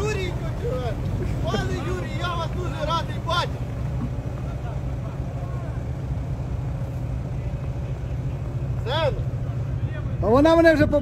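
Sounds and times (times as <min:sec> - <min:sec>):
vehicle engine low drone: 0:00.0 - 0:11.0.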